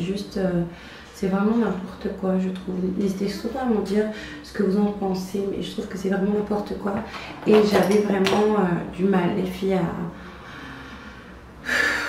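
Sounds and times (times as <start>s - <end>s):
woman breathing in sharply: 10.2s - 12.0s.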